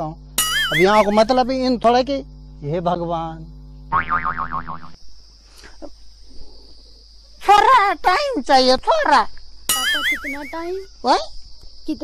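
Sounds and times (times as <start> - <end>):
cartoon boing sound effect: 0.4 - 1.1, 3.9 - 5.0.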